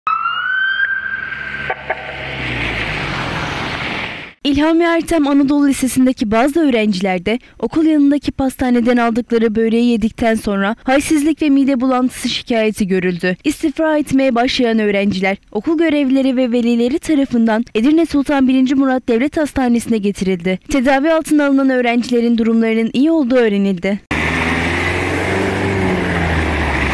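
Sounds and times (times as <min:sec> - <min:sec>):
ambulance siren wailing: 0:00.0 - 0:04.0
steady rushing noise: 0:01.4 - 0:04.4.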